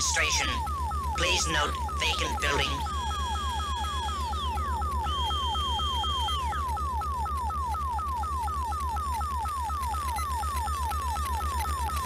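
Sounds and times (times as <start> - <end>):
high beep gliding down: 0.0 - 8.5
low pulsing hum: 0.0 - 12.0
rapid falling electronic blips: 0.0 - 12.0.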